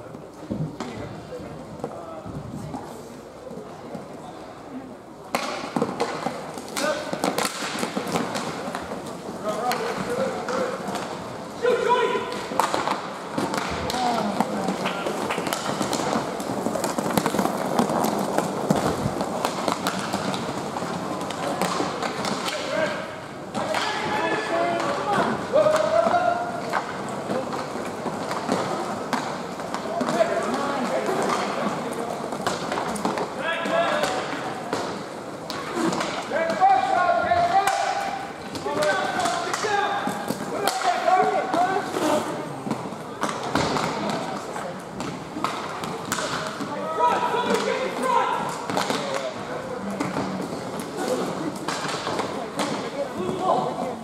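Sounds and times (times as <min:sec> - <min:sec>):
hockey sticks and puck knocking: 0:00.0 - 0:02.0, 0:05.2 - 0:54.0.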